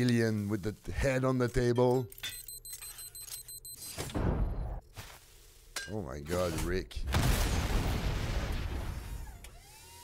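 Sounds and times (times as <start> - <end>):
cartoon explosion: 7.1 - 9.3.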